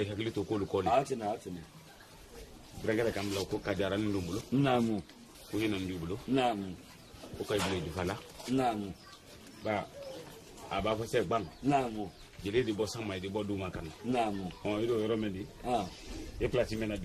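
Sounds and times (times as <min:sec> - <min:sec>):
men talking: 0:00.0 - 0:17.0.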